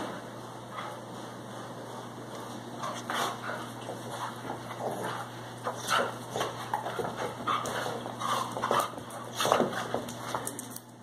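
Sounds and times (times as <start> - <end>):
dogs scuffling: 0.0 - 11.0
dogs growling and yipping: 3.0 - 9.7.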